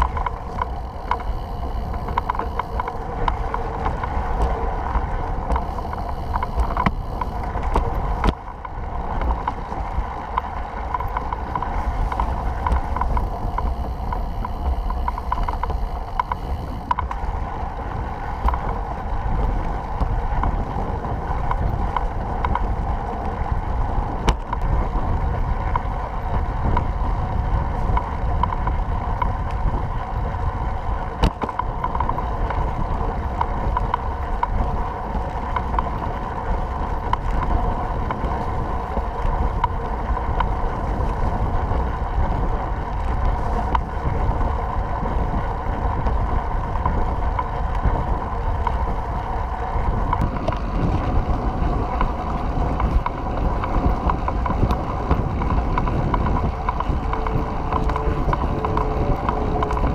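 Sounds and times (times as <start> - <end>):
trike rolling and drivetrain noise: 0.0 - 59.9
wind noise on microphone: 0.0 - 59.9.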